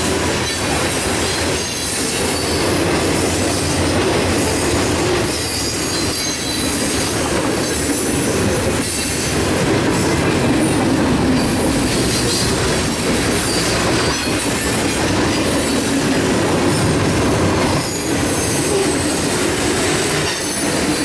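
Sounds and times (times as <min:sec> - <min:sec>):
train wheels rumbling on rails: 0:00.0 - 0:21.0
high wheel squeal: 0:01.4 - 0:10.2, 0:11.4 - 0:14.5, 0:17.7 - 0:21.0.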